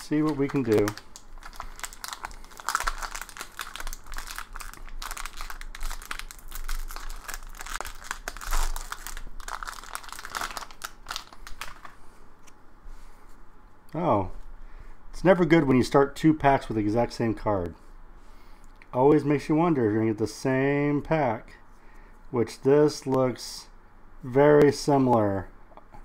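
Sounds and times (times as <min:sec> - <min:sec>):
card wrapper crinkling and tearing: 0:00.0 - 0:12.0.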